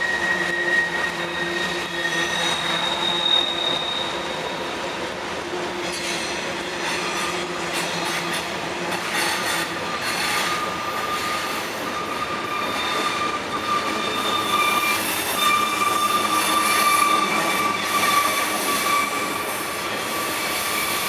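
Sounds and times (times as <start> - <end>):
train wheel flange squeal: 0.0 - 21.0.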